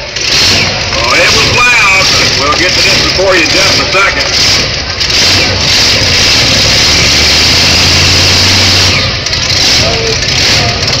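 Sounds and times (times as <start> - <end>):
tractor engine running loud: 0.0 - 11.0.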